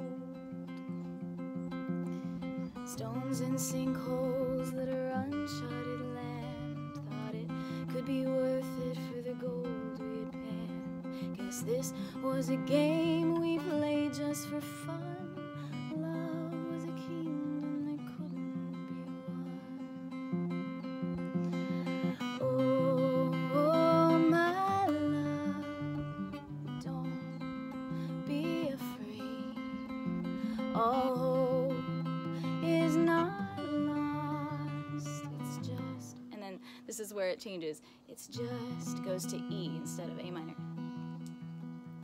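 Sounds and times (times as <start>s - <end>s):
woman singing with vibrato: 0.0s - 0.6s, 2.8s - 20.6s, 21.7s - 37.3s, 38.1s - 40.7s
fingerpicked acoustic guitar: 0.0s - 42.0s.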